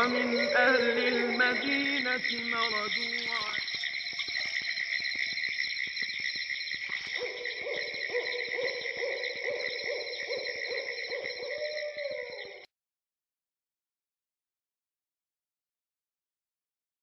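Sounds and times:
low repeated call: 0.0s - 4.0s
insects chirring: 0.0s - 12.7s.

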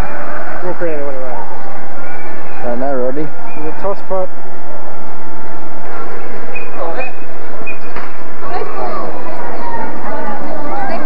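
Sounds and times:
loud steady background noise: 0.0s - 11.0s
indistinct voices: 5.8s - 11.0s.

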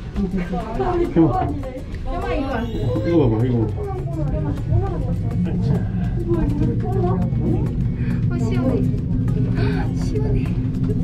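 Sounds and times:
background music: 0.0s - 11.0s
chatter of voices: 0.0s - 11.0s
low rumble of cable car: 2.8s - 11.0s.

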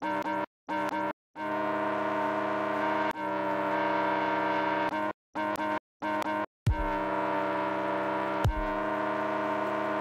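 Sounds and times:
brassy synthesized chord: 1.4s - 4.9s, 6.7s - 10.0s.

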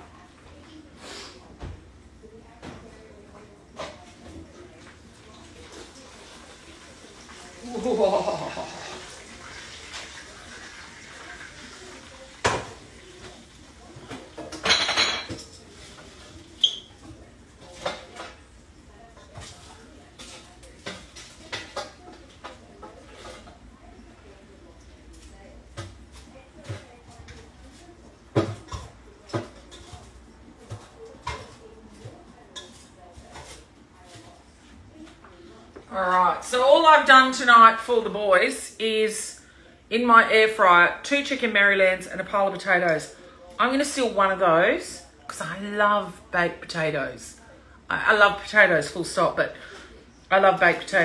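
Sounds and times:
plates and cutlery clinking: 12.4s - 18.4s, 28.3s - 34.3s.

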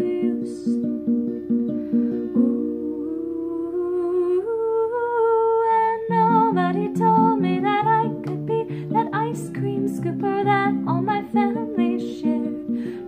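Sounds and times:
acoustic guitar: 0.0s - 13.0s.

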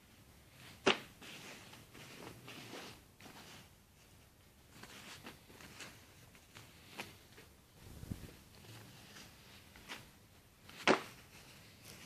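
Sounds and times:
denim rustling: 0.0s - 12.0s
denim fabric snap: 0.8s - 1.1s, 10.8s - 11.2s.

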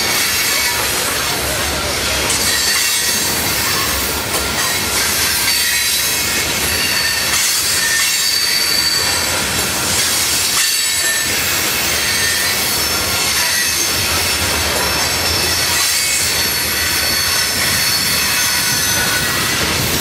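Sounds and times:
train wheels rumbling on rail: 0.0s - 20.0s
high wheel squeals: 1.8s - 20.0s.

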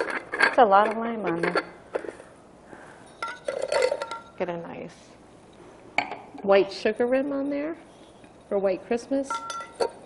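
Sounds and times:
glass clinking against glass: 9.3s - 10.0s.

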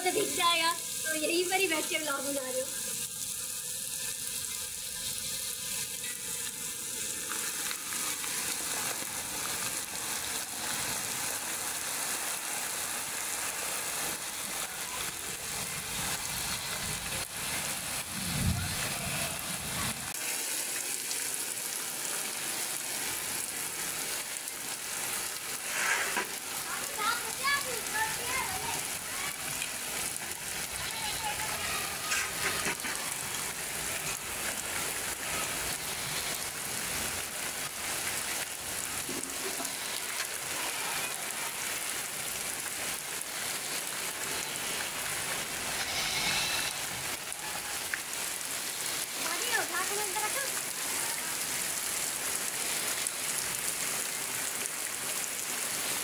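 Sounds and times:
heavy rain: 0.0s - 56.0s.

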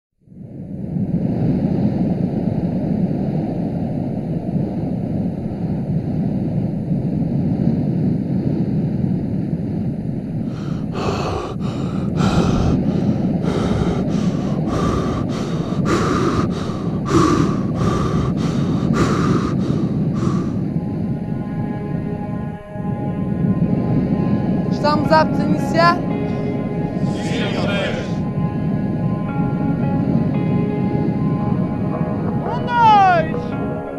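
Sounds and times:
low rumble: 10.2s - 22.4s
quick hard breaths: 10.5s - 20.6s.

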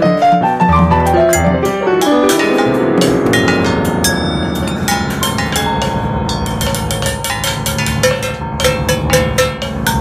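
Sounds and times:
piano: 0.0s - 10.0s
metal percussion struck with sticks: 0.8s - 10.0s.

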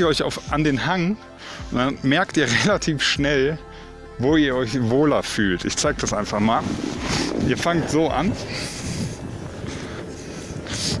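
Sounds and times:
wind noise on microphone: 4.2s - 11.0s.

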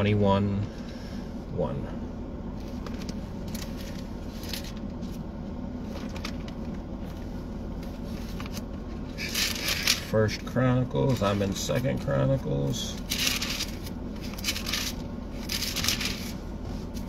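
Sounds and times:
steady low hum: 0.0s - 17.0s
pages being turned: 9.2s - 10.0s, 13.0s - 17.0s
pages riffled: 9.2s - 10.1s, 13.0s - 16.4s.

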